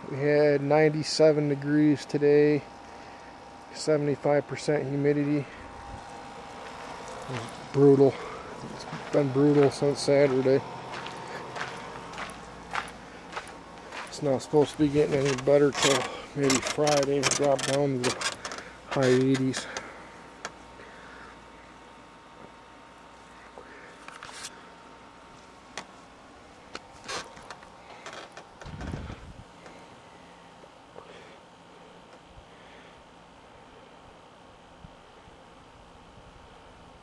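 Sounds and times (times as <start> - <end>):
outdoor night background hiss: 0.0 - 37.0
soft footsteps: 8.6 - 17.4.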